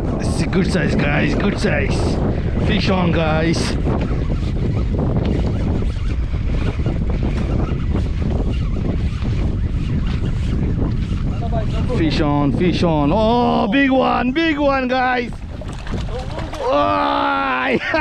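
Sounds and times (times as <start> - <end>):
wind buffeting microphone: 0.0 - 18.0
water washing against boat: 8.9 - 18.0.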